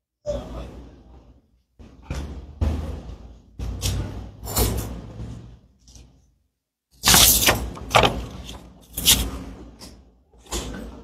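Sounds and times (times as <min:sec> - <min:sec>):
knocks and bumps: 0:01.8 - 0:05.6, 0:07.0 - 0:09.3.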